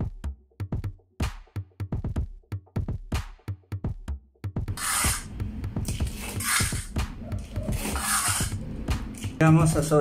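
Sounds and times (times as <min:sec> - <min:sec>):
electronic music with a beat: 0:00.0 - 0:10.0
trowel scraping concrete floor: 0:04.7 - 0:08.6.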